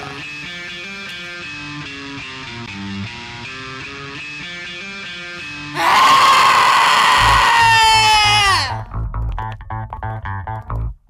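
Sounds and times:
woman screaming: 5.8 - 8.8.

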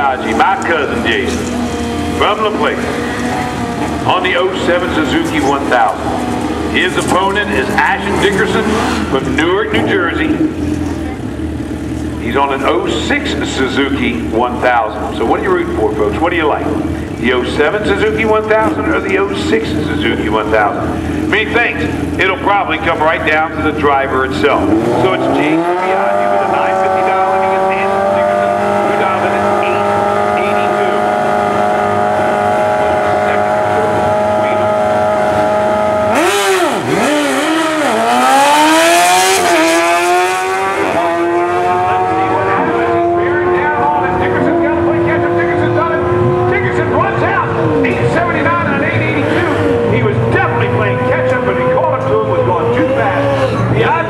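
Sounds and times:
motorcycle engines revving: 0.0 - 54.0
motorcycles accelerating through gears: 0.0 - 54.0.

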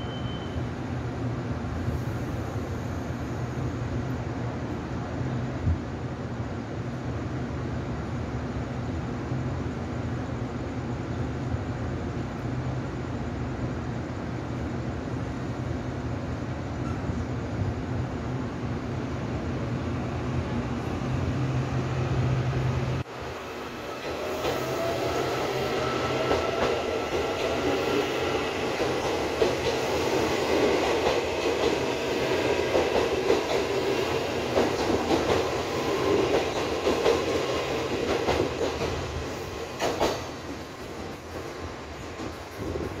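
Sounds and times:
electric train whine: 0.0 - 43.0.

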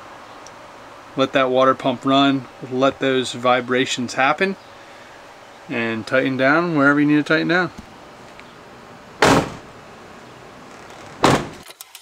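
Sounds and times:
van door slamming: 9.2 - 9.7, 11.0 - 11.6.

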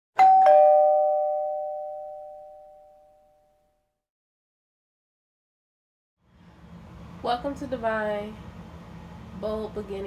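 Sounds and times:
two-note ding-dong chime: 0.2 - 3.6.

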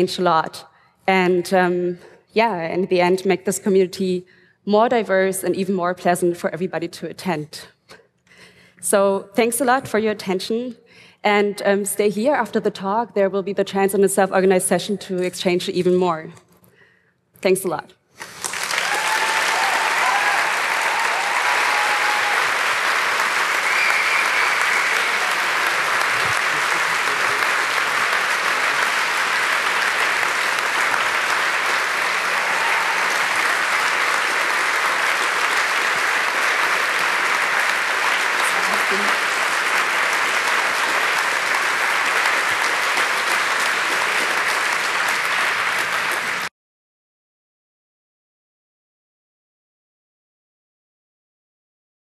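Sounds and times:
audience applauding: 18.2 - 46.5.

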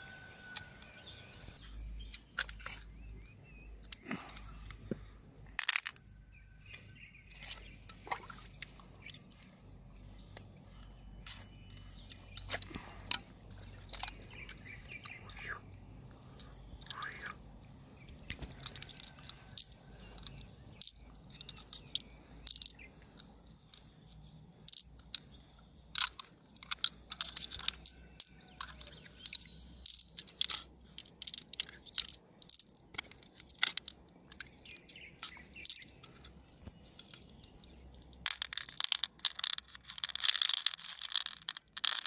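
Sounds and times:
beads clicking together: 5.6 - 6.0, 16.4 - 17.4, 18.5 - 25.2, 25.9 - 42.0.

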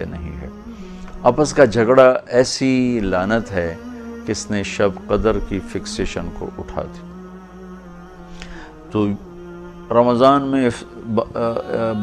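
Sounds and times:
man speaking: 0.0 - 0.6, 1.2 - 7.1, 8.9 - 9.3, 9.9 - 12.0
low sustained drone music: 0.0 - 12.0.

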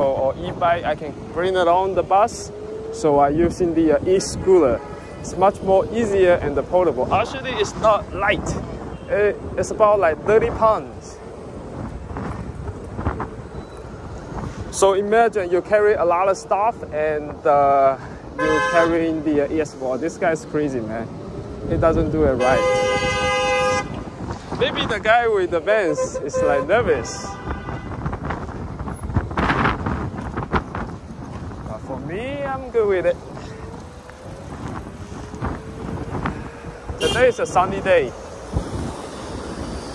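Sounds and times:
low road rumble: 0.0 - 39.9
wind rush on microphone: 0.0 - 39.9.

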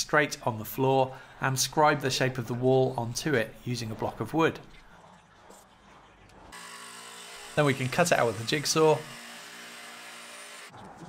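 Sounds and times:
jigsaw cutting plywood: 6.5 - 10.7.

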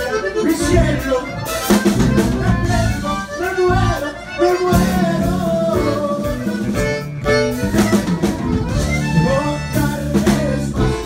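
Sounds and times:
bass: 0.0 - 11.0
button accordion: 0.0 - 11.0
drum kit: 0.0 - 11.0.

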